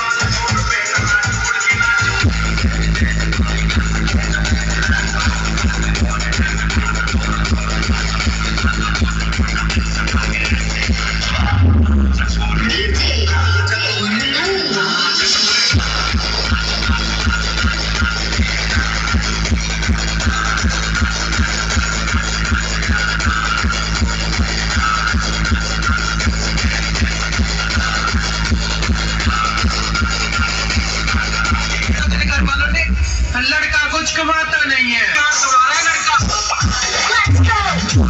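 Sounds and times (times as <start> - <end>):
steady bass beat: 0.0 - 34.8, 35.6 - 38.0
electronic dance music: 0.0 - 38.0.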